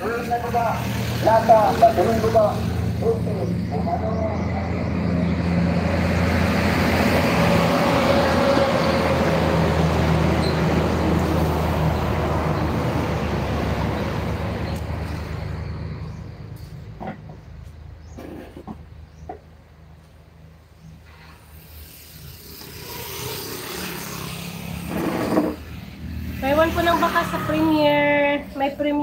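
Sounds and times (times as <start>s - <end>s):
truck engine drone passing: 0.0s - 18.1s, 19.7s - 29.0s.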